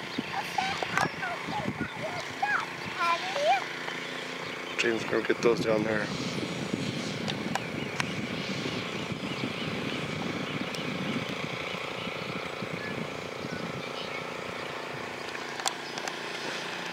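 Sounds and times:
steady engine drone: 0.0 - 16.9.

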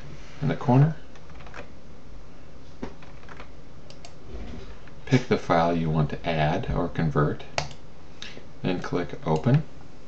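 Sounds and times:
steady low hiss: 0.0 - 10.0
computer mouse clicks: 3.1 - 4.2.

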